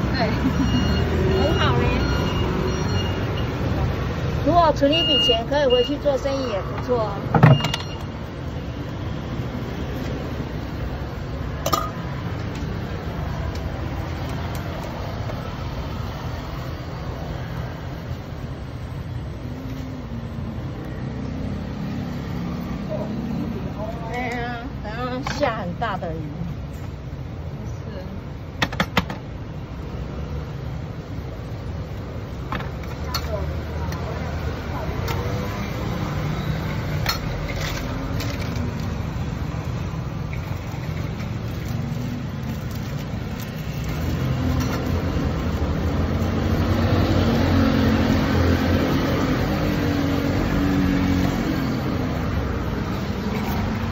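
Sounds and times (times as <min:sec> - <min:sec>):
low traffic rumble: 0:00.0 - 0:53.9.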